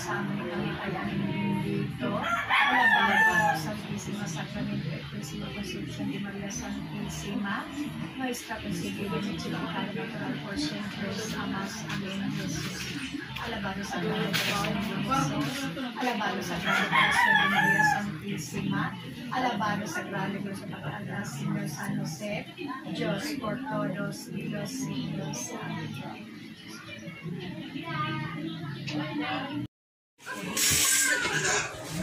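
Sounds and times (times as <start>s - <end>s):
rooster crowing: 2.2s - 3.7s, 16.6s - 18.1s.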